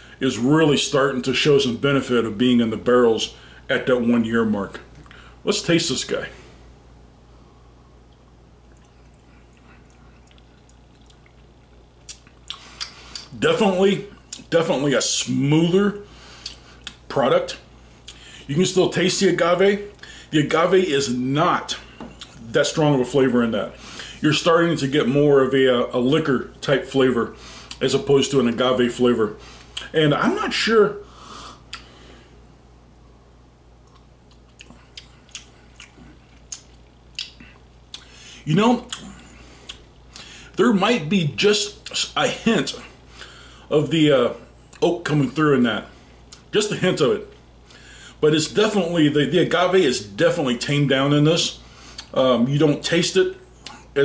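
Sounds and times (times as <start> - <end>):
wet lip smacks and tongue clicks: 8.1 - 13.3, 31.6 - 31.9, 33.8 - 38.2, 38.9 - 40.3, 52.0 - 52.2
faint breath: 39.2 - 40.6, 43.1 - 43.7, 47.7 - 48.2.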